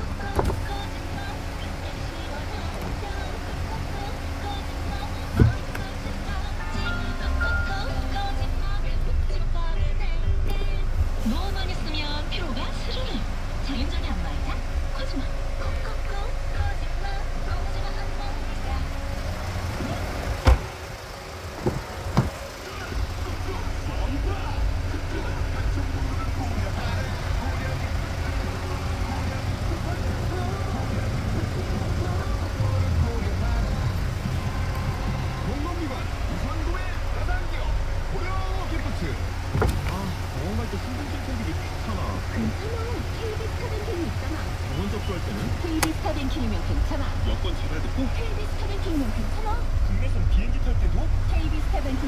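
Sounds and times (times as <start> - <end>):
car cabin rumble: 0.0 - 52.0
indistinct background voices: 0.0 - 52.0.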